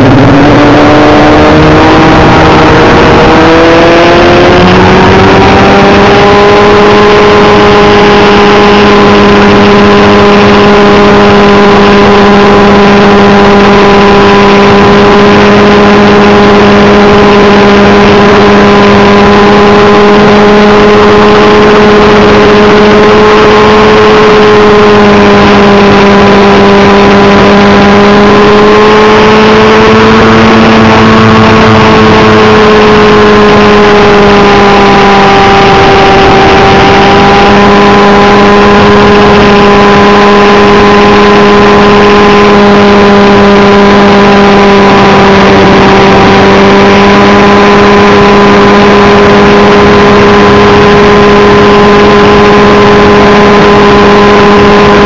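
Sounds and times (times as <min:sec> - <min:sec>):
model helicopter engine running: 0:00.0 - 0:55.0.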